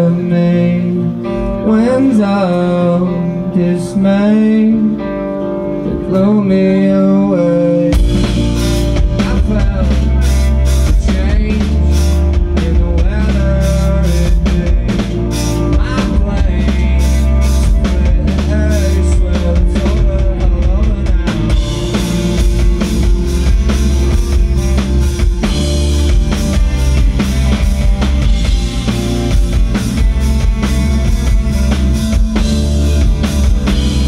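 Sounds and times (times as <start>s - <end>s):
distorted electric guitars: 0.0s - 34.0s
rock band playing live: 0.0s - 34.0s
drum kit: 7.9s - 34.0s.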